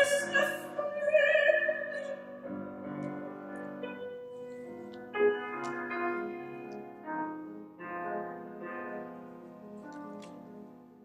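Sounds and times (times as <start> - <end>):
grand piano chords ringing: 0.0 - 11.0.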